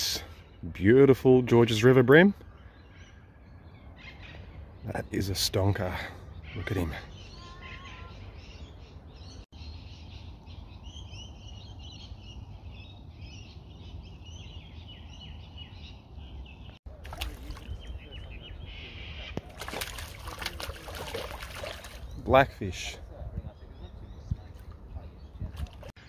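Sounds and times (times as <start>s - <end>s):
birds chirping and calling: 0.0s - 26.0s.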